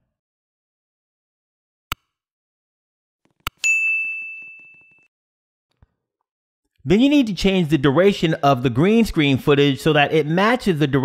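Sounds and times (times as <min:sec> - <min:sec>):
bright bell ding: 0:03.6 - 0:05.0.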